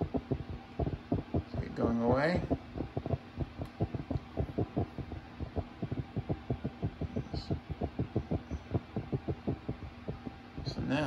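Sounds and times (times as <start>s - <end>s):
garment steamer sputtering: 0.0s - 11.0s.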